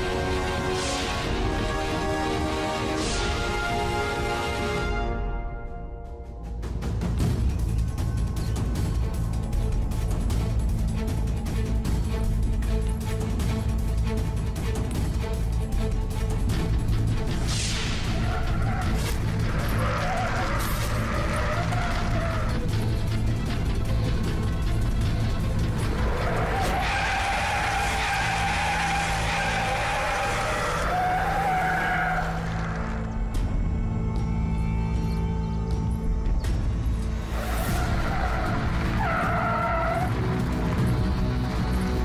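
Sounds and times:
background music: 0.0s - 42.0s
car tyres squealing: 18.1s - 22.7s, 25.7s - 33.1s, 37.3s - 40.8s.

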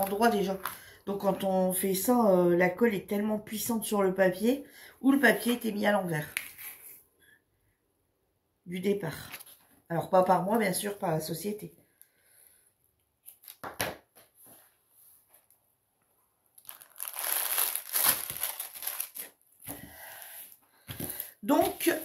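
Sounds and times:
plastic crinkling and rustling: 0.0s - 1.4s, 16.5s - 19.8s.

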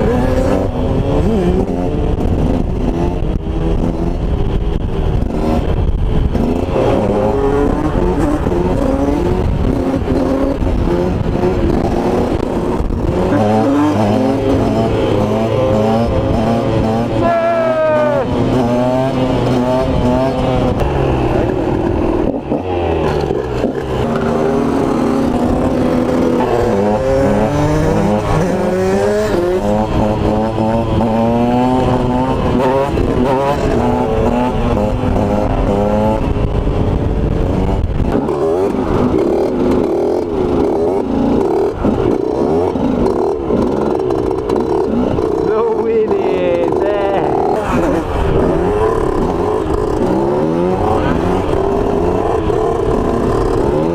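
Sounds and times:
motorcycle engines revving: 0.0s - 53.9s.

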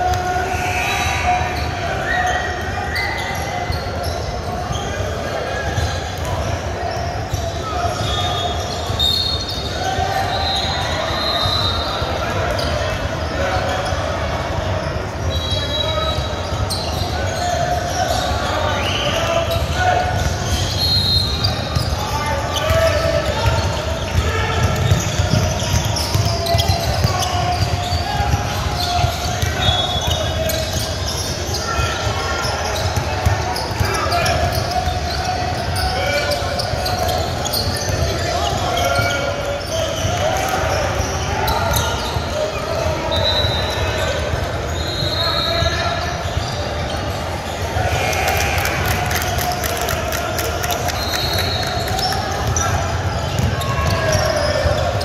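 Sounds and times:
sneaker squeaks: 0.0s - 55.0s.

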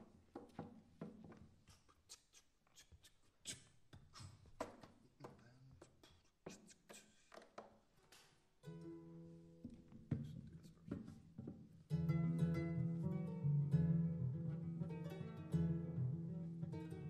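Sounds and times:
plucked strings playing: 8.6s - 10.1s, 11.9s - 17.0s.

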